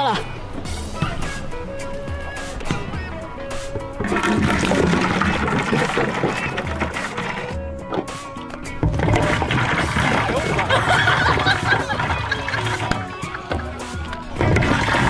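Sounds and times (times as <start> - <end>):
background music: 0.0 - 15.0
water glugging into jug: 0.6 - 15.0.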